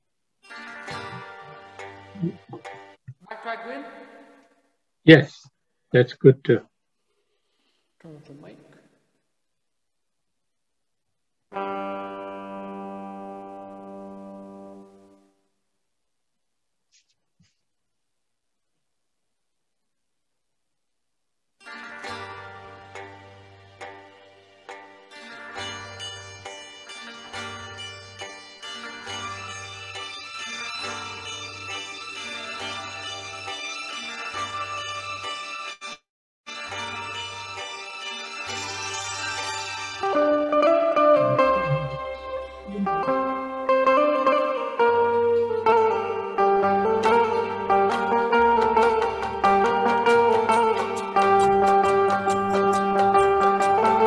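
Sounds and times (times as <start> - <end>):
keyed banjo melody: 0.5 - 3.0, 39.9 - 54.0
backing track with low bass: 2.2 - 3.2, 41.2 - 43.3
banjo note ringing out: 38.6 - 43.5.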